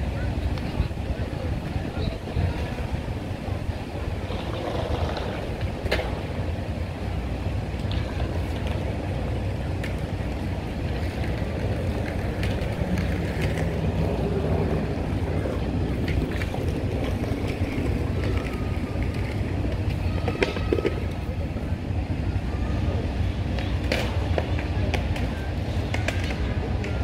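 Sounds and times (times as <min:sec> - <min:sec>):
wind on microphone: 0:00.0 - 0:08.4
low outdoor rumble: 0:00.0 - 0:27.0
skate wheels rolling on paving: 0:00.0 - 0:27.0
skates clicking on ground: 0:03.6 - 0:06.5, 0:07.1 - 0:21.7, 0:22.6 - 0:27.0.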